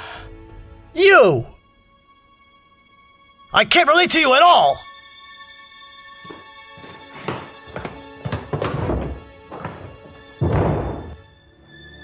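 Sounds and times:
film score music: 0.0s - 12.0s
dull thuds: 6.3s - 11.3s.

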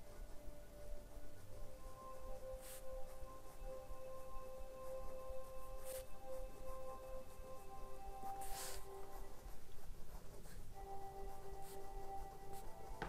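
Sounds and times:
pen scratching on paper: 0.0s - 13.0s.

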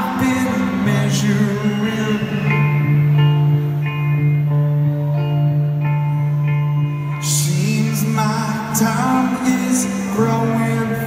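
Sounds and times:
electric guitar picking notes: 0.0s - 11.0s.

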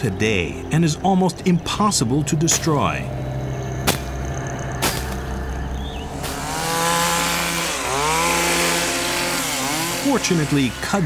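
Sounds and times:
chainsaw revving and cutting vines: 4.8s - 11.0s.

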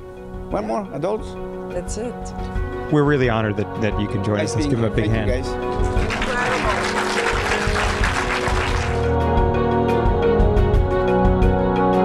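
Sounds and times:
sustained closing music: 2.8s - 10.3s
audience applauding: 5.6s - 9.2s.

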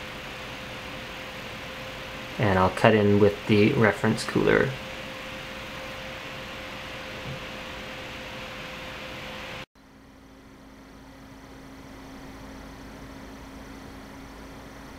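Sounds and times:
cooler fans whooshing: 0.0s - 14.9s
fan humming: 0.0s - 14.9s.

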